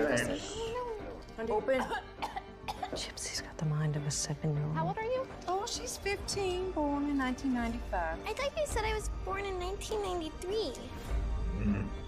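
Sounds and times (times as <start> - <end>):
trailer music: 0.0 - 12.0
broken vocal sounds: 11.5 - 12.0.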